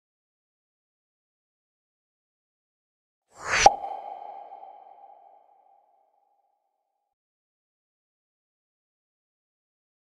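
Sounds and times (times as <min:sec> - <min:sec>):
short whoosh: 0:03.4 - 0:05.6.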